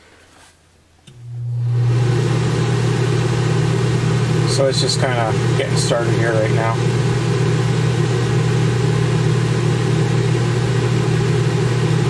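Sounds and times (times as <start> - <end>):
air conditioner hum: 0.0 - 12.0.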